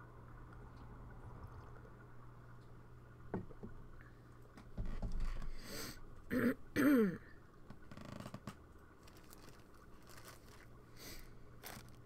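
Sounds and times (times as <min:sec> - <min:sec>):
person clearing throat: 0:06.3 - 0:07.3.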